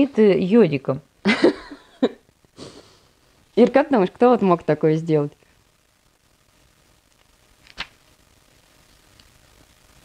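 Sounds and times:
sniffing through the nose: 2.6s - 3.1s.

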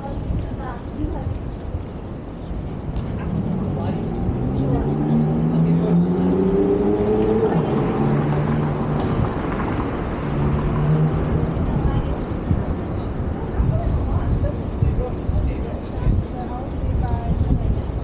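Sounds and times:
city street noise: 0.0s - 18.0s
vehicle engine humming: 2.7s - 14.5s.

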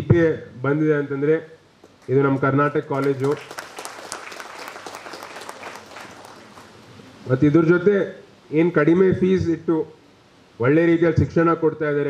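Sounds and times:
audience clapping: 2.0s - 6.9s
man speaking: 2.1s - 3.5s.

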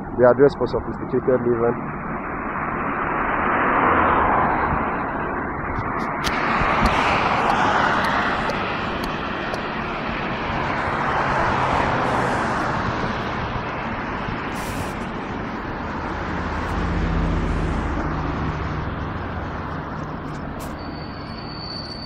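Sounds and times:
car road and wind noise: 0.0s - 22.0s
sharp clicks: 5.8s - 9.7s.

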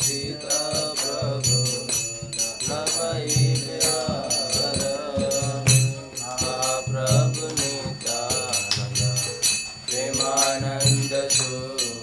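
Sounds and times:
hand cymbals striking: 0.0s - 12.0s
voices chanting a melody: 0.0s - 12.0s.

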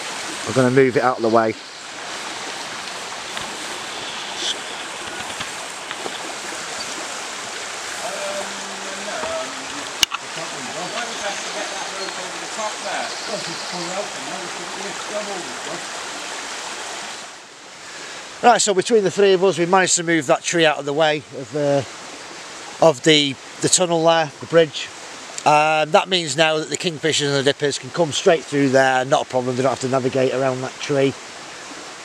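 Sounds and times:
river running over rocks: 0.0s - 32.0s
distant men's voices: 2.8s - 16.3s.

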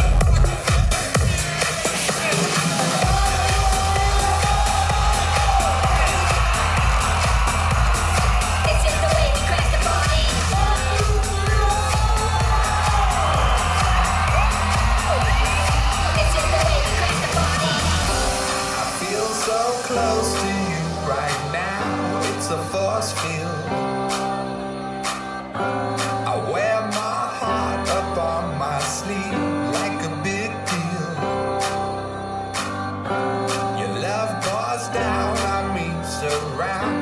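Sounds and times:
electronic dance music: 0.0s - 37.0s
crowd cheering and whooping: 2.0s - 23.4s
pulsing bass line: 3.0s - 18.4s.

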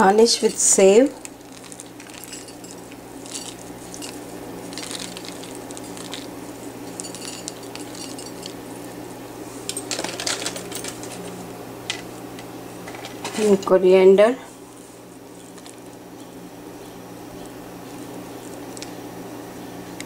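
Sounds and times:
steady low hum: 0.0s - 20.0s.

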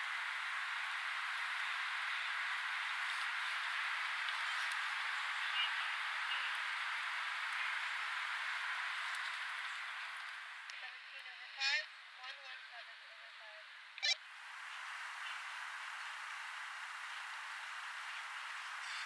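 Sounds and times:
steady outdoor hiss: 0.0s - 19.0s
faint distant voice: 4.4s - 6.7s.

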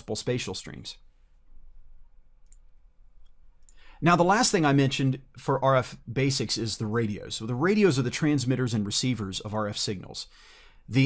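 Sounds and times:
faint clicks: 2.4s - 3.8s.

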